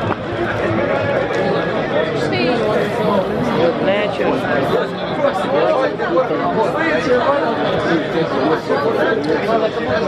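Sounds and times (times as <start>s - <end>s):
crowd chattering: 0.0s - 10.0s.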